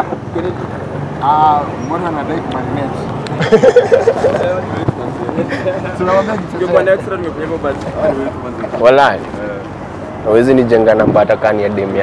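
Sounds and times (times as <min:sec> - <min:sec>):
people talking: 0:00.0 - 0:09.7, 0:10.3 - 0:12.0.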